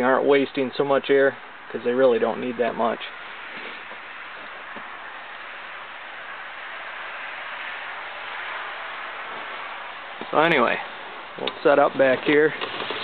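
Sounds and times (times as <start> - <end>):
outdoor background hiss: 0.0 - 13.0.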